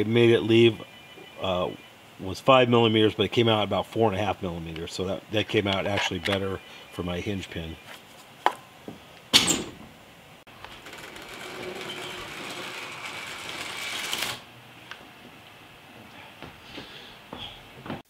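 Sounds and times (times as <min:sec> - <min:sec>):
mechanical whir: 0:10.6 - 0:14.4.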